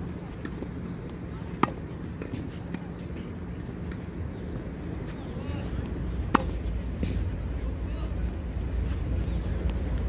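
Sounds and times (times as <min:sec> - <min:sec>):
tennis racket hitting ball: 0:01.5 - 0:02.8, 0:06.2 - 0:07.2.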